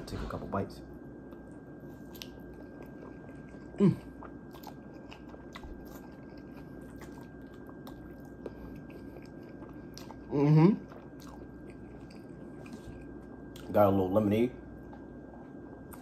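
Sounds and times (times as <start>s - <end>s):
close-up chewing: 1.3s - 13.8s.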